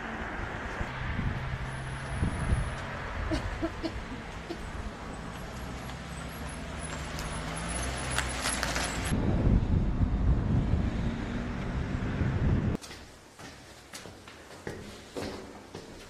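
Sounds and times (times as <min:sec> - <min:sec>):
vehicle engine humming and rumbling: 0:00.0 - 0:12.8
footsteps on concrete steps: 0:12.8 - 0:16.0.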